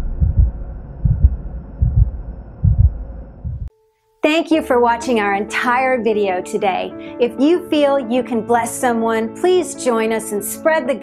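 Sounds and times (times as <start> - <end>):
heartbeat thumps: 0.0 - 3.7
steady low hum: 0.0 - 3.7.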